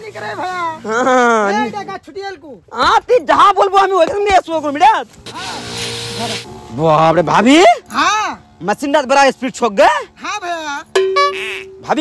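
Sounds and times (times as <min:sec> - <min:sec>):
spray hissing: 0:05.3 - 0:06.6.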